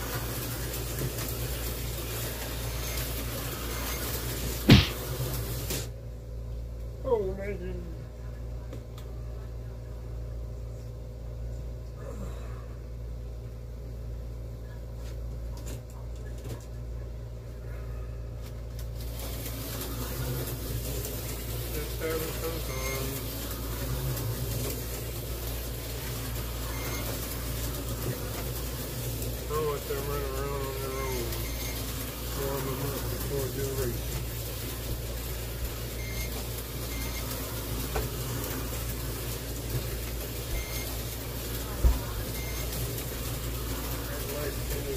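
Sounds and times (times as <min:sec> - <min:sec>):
slot car motors whirring: 0:00.0 - 0:06.0, 0:18.8 - 0:44.9.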